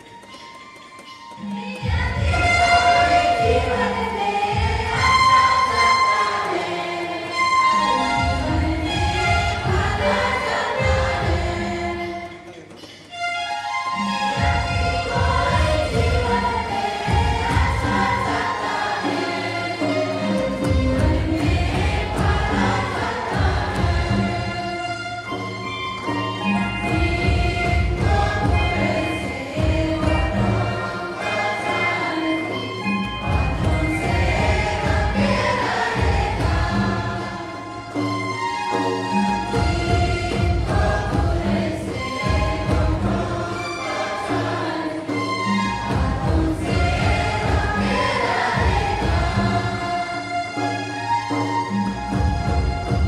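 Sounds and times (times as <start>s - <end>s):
women singing a hymn: 1.6s - 12.4s, 14.6s - 25.0s, 26.4s - 38.0s, 39.4s - 50.6s
low drum beats: 1.8s - 5.8s, 14.4s - 19.3s, 20.4s - 24.6s, 26.8s - 30.9s, 33.2s - 37.4s, 39.5s - 43.6s, 45.8s - 49.9s
men singing a hymn: 26.9s - 32.6s, 33.5s - 37.6s, 46.1s - 50.1s.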